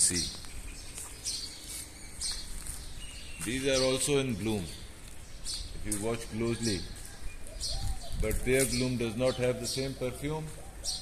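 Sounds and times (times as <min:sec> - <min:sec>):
wind in trees: 0:00.0 - 0:11.0
wind on microphone: 0:07.2 - 0:08.9.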